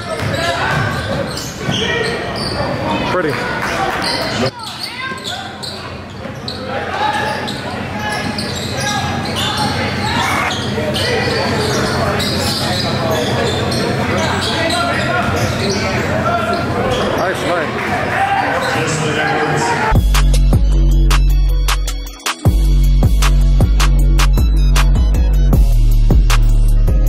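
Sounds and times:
crowd chatter echoing: 0.0s - 26.9s.

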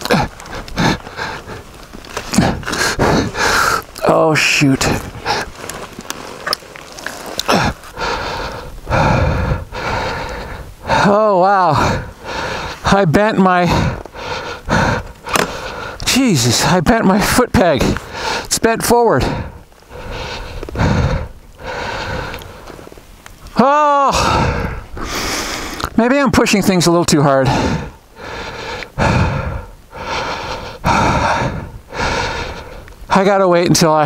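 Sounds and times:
man breathing hard: 0.0s - 6.4s, 7.1s - 16.8s, 17.8s - 23.0s, 24.0s - 25.9s, 27.4s - 33.1s.

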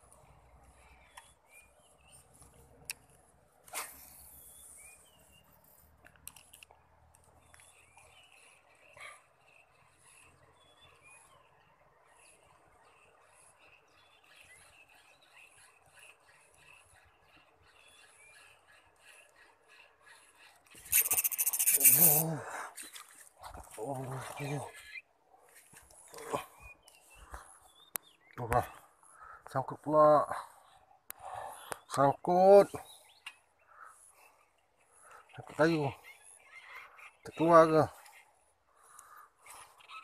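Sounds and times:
birds chirping: 0.0s - 40.0s
fishing reel drag screaming: 20.8s - 22.3s.

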